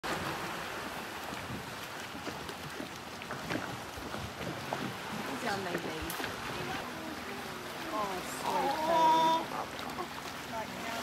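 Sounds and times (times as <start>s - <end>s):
water around boat: 0.0s - 11.0s
wind on microphone: 0.1s - 7.4s.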